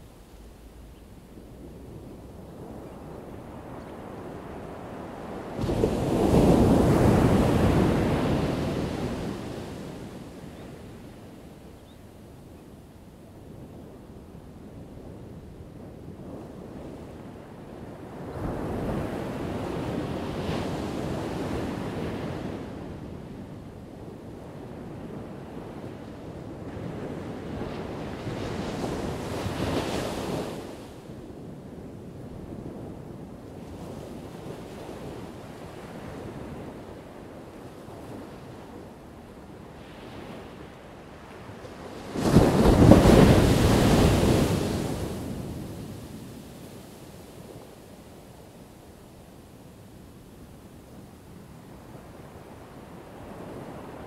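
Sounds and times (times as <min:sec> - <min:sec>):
waves breaking on a shore: 0:00.0 - 0:12.0, 0:13.5 - 0:54.0.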